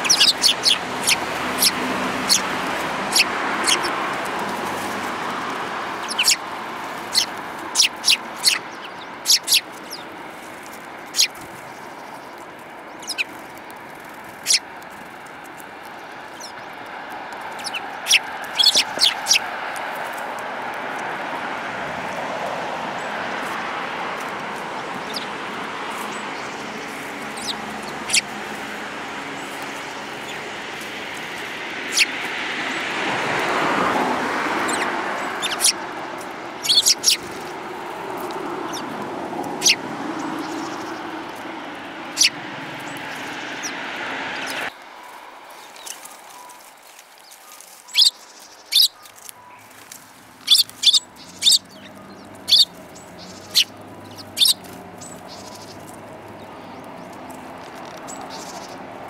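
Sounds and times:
rushing background noise: 0:00.0 - 0:59.0
sparrows chirping: 0:00.0 - 0:59.0.

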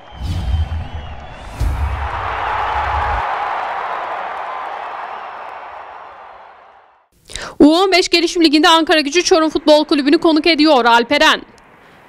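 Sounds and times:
crowd-like cheering: 0:00.0 - 0:07.1
deep bass hit: 0:00.1 - 0:03.2.

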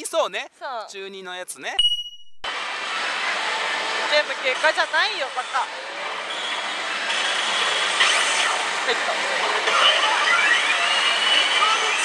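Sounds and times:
many slot machines running: 0:02.6 - 0:12.0.

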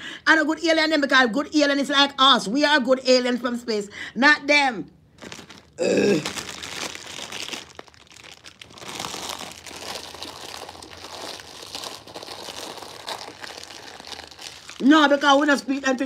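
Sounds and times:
plastic bag crinkling: 0:05.1 - 0:16.0.

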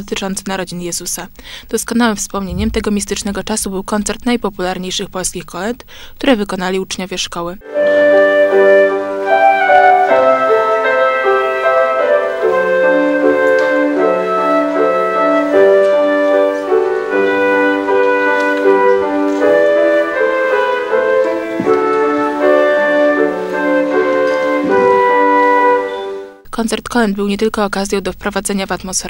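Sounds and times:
flute melody: 0:07.6 - 0:26.4
grand piano accompaniment: 0:07.7 - 0:26.4.

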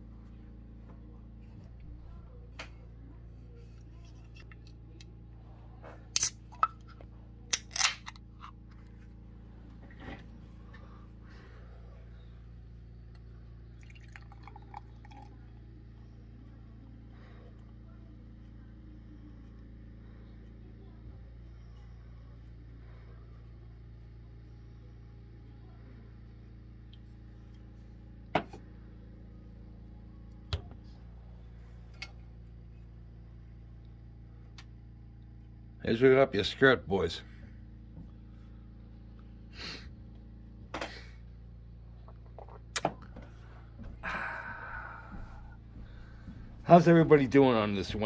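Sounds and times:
low electrical hum: 0:00.0 - 0:48.0.

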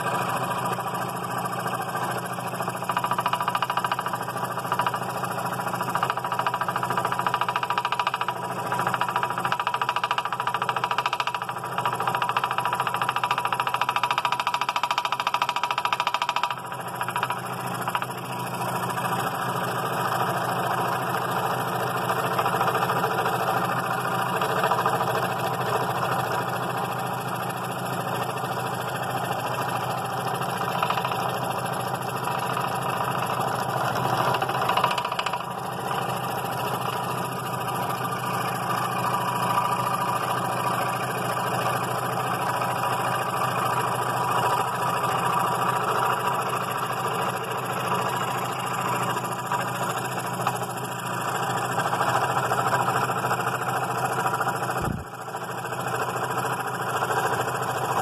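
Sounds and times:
scroll saw cutting wood: 0:32.3 - 0:37.2.

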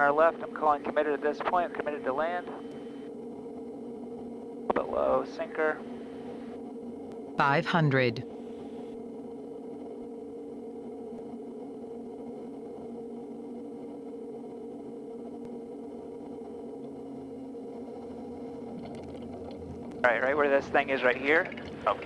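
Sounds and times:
propeller plane engine drone: 0:00.0 - 0:22.0.

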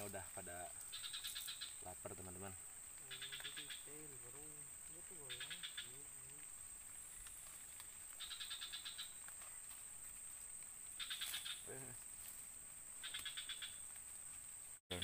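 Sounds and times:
high-pitched insect drone: 0:00.0 - 0:15.0
rapid clicking animal call: 0:00.4 - 0:12.0, 0:13.0 - 0:15.0.

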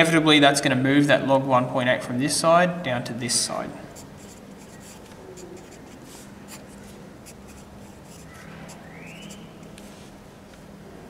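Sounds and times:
pencil scratching on paper: 0:04.0 - 0:09.8.

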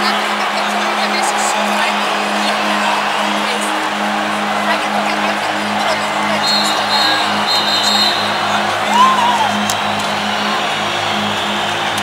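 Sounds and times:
crowd noise: 0:00.0 - 0:12.0
rising-and-falling whistle: 0:06.4 - 0:12.0.

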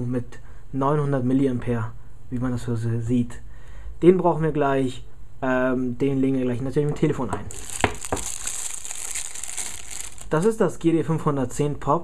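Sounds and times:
plastic wrapping crinkling: 0:07.5 - 0:10.5.

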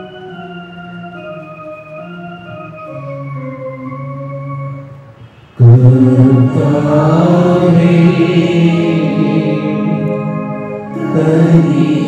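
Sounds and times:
organ chord: 0:00.0 - 0:12.0
congregation singing a hymn: 0:05.6 - 0:12.0.

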